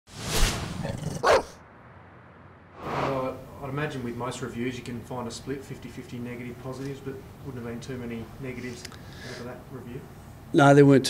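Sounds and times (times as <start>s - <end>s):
dog barking: 1.2s - 1.6s
loud swell of sound: 1.6s - 3.6s.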